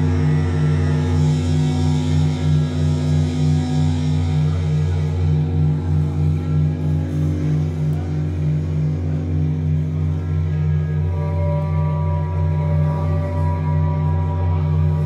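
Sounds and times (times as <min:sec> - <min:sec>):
low synthesizer bass drone: 0:00.0 - 0:15.0
pulsing synth tone: 0:00.0 - 0:15.0.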